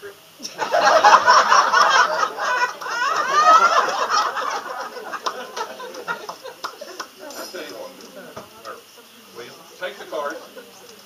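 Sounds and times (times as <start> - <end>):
audience laughing: 0.4 - 9.1, 10.0 - 11.0.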